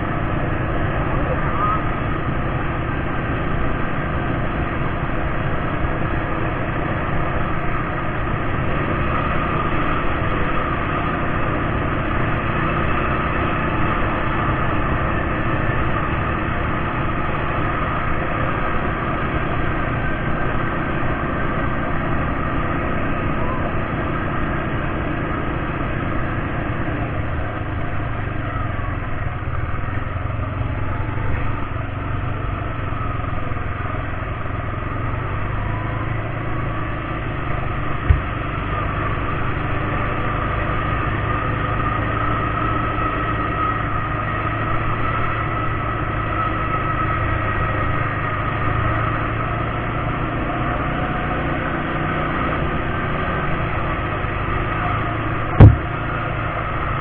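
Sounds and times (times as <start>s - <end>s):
atv engine running: 0.0s - 57.0s
sharp knock: 38.1s - 38.3s, 55.6s - 55.9s.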